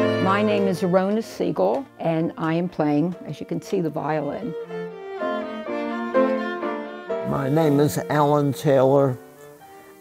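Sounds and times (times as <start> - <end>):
piano: 0.0 - 10.0
violin melody: 0.0 - 10.0.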